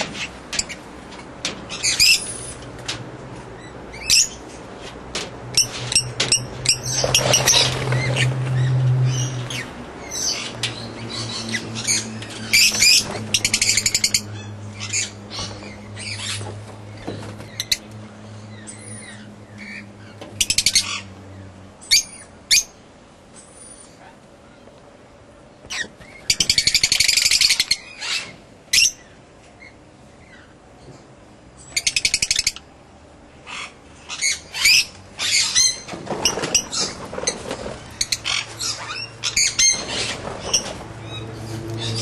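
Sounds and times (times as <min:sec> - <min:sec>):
birds chirping and calling: 0:00.0 - 0:02.7, 0:03.6 - 0:04.6, 0:05.6 - 0:24.2, 0:25.6 - 0:31.0, 0:31.6 - 0:32.7, 0:33.4 - 0:42.0.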